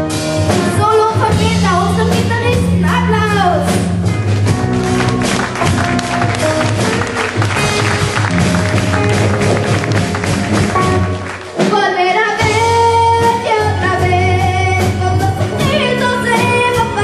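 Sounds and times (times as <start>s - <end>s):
live band playing slow song: 0.0s - 17.0s
woman singing: 11.6s - 17.0s.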